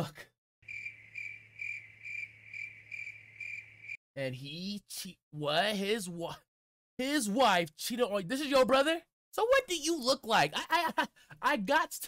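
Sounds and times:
high-pitched pulsing chirping: 0:00.7 - 0:04.0.

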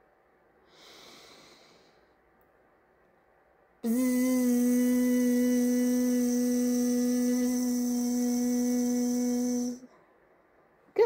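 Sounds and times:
woman humming a buzzing zzz: 0:03.8 - 0:09.9.

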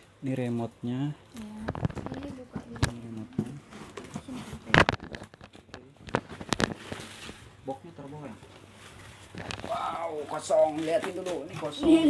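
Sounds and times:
cardboard and plastic rustling: 0:01.4 - 0:12.0
packing crackles and knocks: 0:01.6 - 0:12.0.

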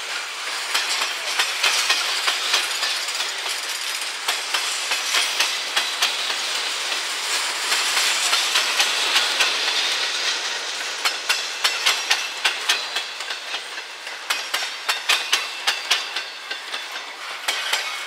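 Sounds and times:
wheels rushing on rails: 0:00.0 - 0:18.0.

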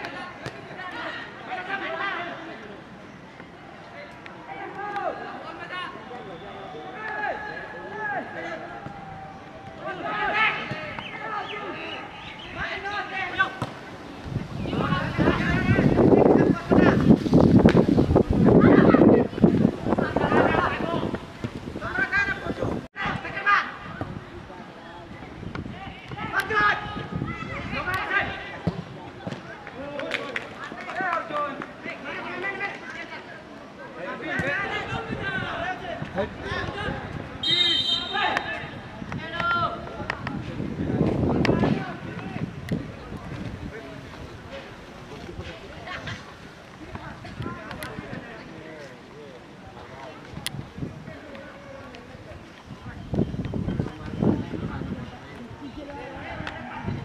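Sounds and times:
people shouting and calling out: 0:04.0 - 0:13.7, 0:18.4 - 0:24.6, 0:25.6 - 0:44.6
players calling out: 0:34.0 - 0:40.2.

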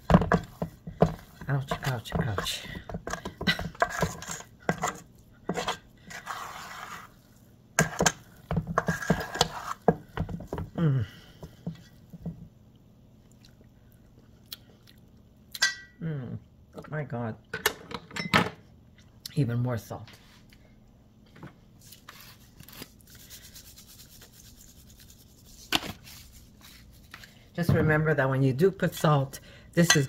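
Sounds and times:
metal spoon scraping bowl: 0:03.8 - 0:07.2, 0:08.8 - 0:09.9.

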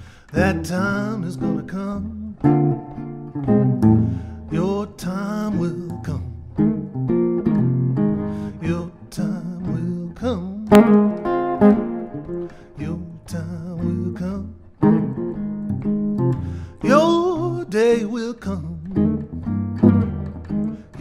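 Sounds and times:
man singing slow song: 0:00.0 - 0:02.9, 0:04.4 - 0:06.6, 0:08.4 - 0:11.3, 0:12.4 - 0:14.7, 0:16.7 - 0:19.3
guitar plucked chords: 0:00.0 - 0:21.0.

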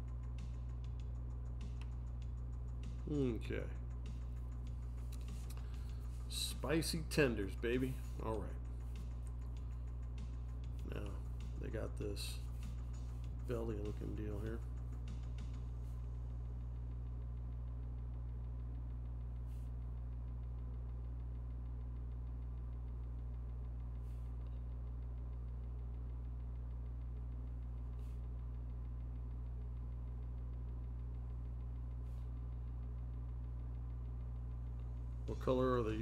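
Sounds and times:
low electrical mains hum: 0:00.0 - 0:36.0.

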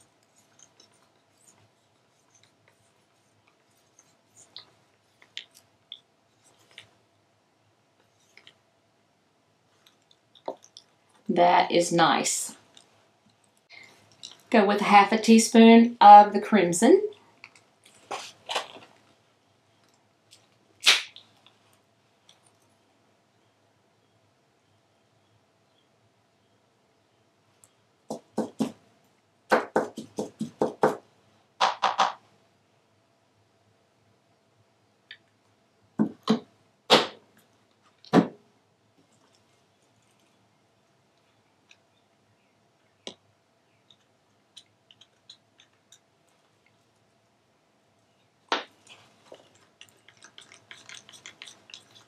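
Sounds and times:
paint spurting from tube: 0:48.6 - 0:52.0.

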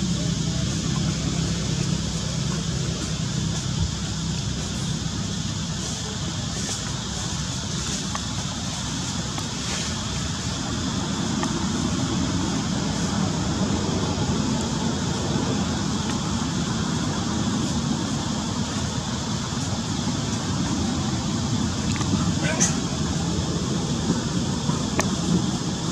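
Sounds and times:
low rumbling background noise: 0:00.0 - 0:25.9.

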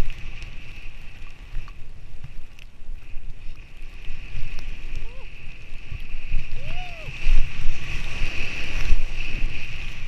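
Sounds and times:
faint clicks: 0:00.0 - 0:05.1
wind buffeting microphone: 0:00.0 - 0:10.0
skis running through powder snow: 0:03.0 - 0:10.0.

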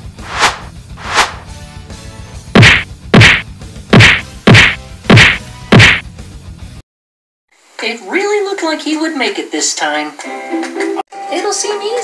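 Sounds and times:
loud punch whacks: 0:00.1 - 0:01.5, 0:02.6 - 0:03.4, 0:04.0 - 0:06.0.

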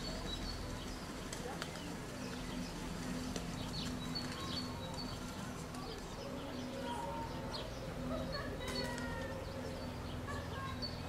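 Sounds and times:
low murmur: 0:00.0 - 0:11.0
small birds chirping: 0:00.0 - 0:11.0.

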